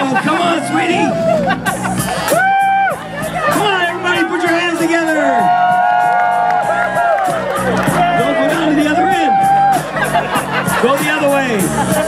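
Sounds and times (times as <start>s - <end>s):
crowd cheering: 0.0s - 12.0s
clapping: 6.1s - 8.0s.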